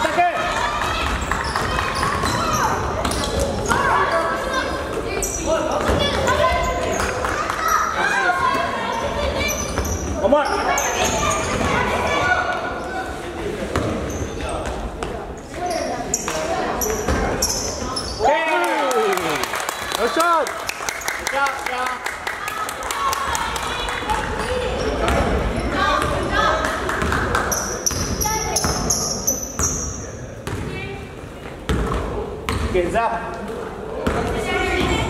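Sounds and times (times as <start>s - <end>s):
voices from sidelines: 0.0s - 35.0s
basketball bouncing on court: 24.1s - 29.0s, 29.6s - 30.9s, 31.7s - 32.8s.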